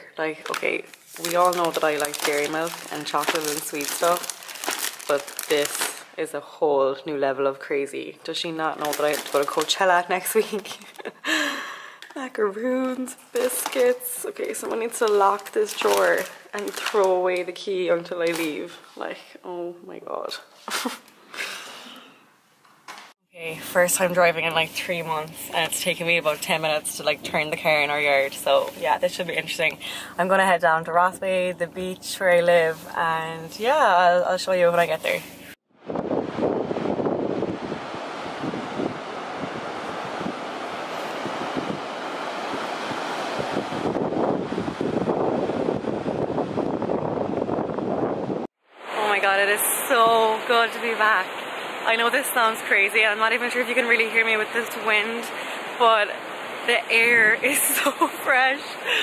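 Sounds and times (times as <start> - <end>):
wind buffeting microphone: 35.8 - 48.5
surf breaking on beach: 35.8 - 59.0.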